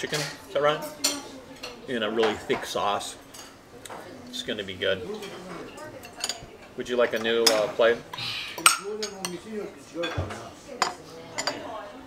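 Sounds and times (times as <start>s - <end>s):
metal cutlery clinking on plates: 0.0s - 4.1s, 5.1s - 7.9s, 8.6s - 9.4s, 10.0s - 11.8s.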